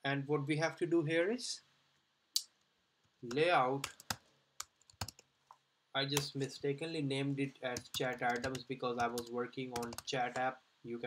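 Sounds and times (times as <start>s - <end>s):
computer keyboard keystrokes: 7.8s - 10.1s.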